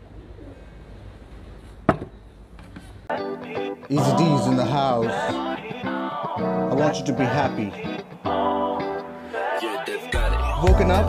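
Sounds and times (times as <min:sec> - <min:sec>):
faint pigeon cooing: 0:00.0 - 0:01.1.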